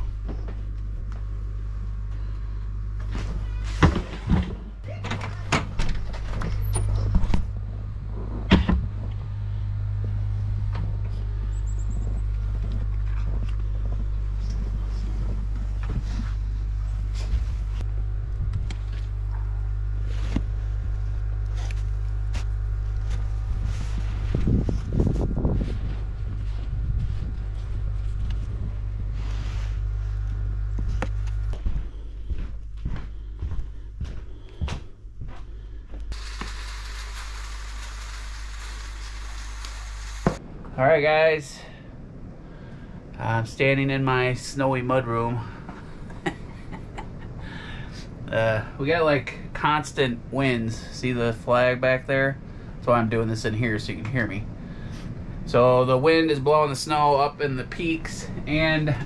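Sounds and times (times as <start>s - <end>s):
wind rumbling on microphone: 5.7s - 19.3s, 22.0s - 33.0s
crunching snow: 7.5s - 17.9s, 18.7s - 32.1s, 36.1s - 40.4s
steady hiss: 36.1s - 41.6s.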